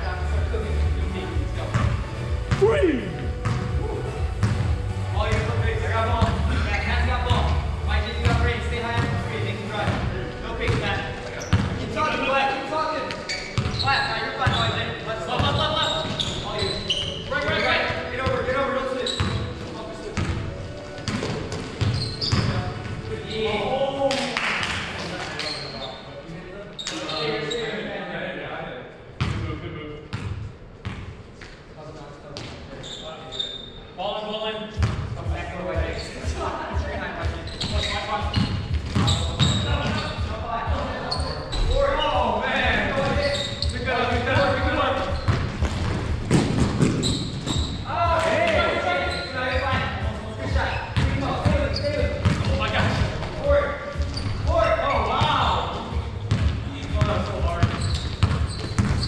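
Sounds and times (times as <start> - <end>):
players calling out: 2.5 - 3.6
basketball bouncing on hardwood floor: 3.4 - 3.7, 45.2 - 47.8, 51.0 - 53.0, 56.0 - 59.0.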